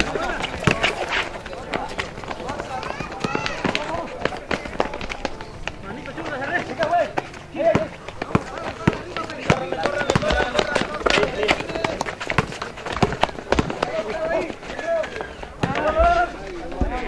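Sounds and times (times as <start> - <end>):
basketball bouncing on concrete: 0.0 - 17.0
people calling and shouting: 0.0 - 17.0
players running: 0.0 - 17.0.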